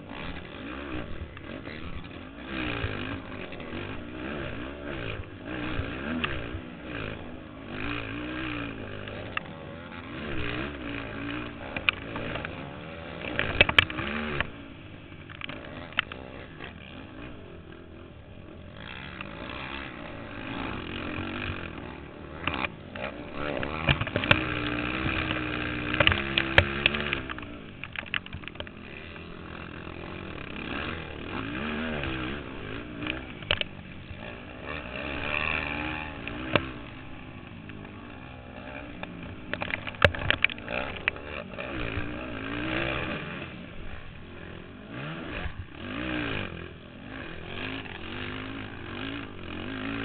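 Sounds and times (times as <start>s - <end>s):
atv engine revving: 0.0s - 50.0s.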